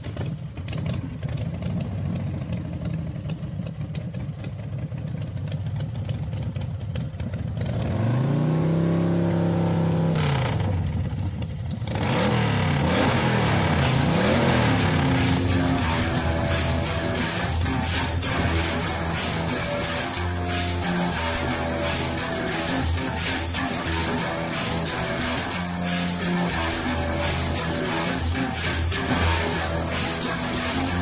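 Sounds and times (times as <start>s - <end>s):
vehicle engine idling and revving: 0.0s - 31.0s.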